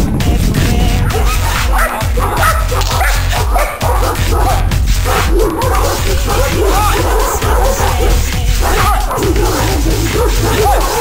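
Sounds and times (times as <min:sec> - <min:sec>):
music: 0:00.0 - 0:11.0
dog barking: 0:01.0 - 0:11.0.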